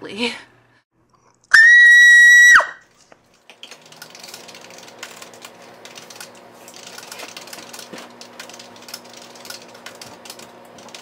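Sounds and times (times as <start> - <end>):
computer keyboard typing: 3.4 - 11.0.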